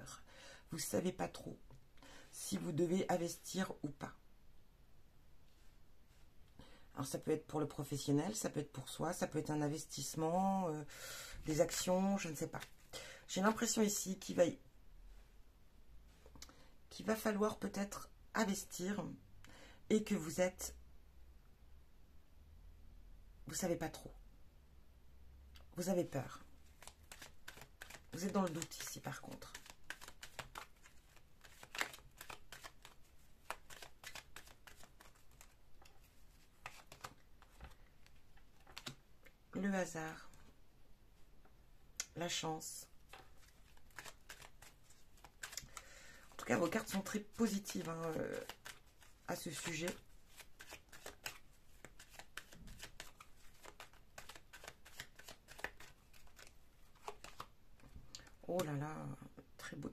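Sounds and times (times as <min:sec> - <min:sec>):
cards being shuffled: 0:26.0 - 0:39.4, 0:43.0 - 0:57.5.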